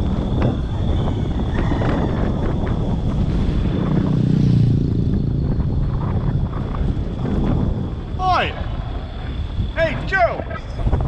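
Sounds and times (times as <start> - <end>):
wind and road noise rumble: 0.0 - 11.0.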